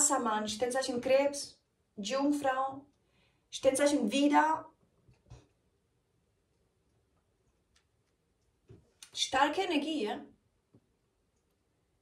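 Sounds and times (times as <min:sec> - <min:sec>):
woman speaking: 0:00.0 - 0:02.9, 0:03.5 - 0:04.8, 0:09.0 - 0:10.4.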